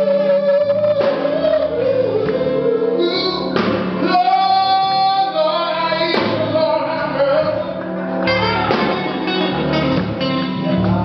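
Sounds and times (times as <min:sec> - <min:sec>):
blues band playing: 0:00.0 - 0:11.0.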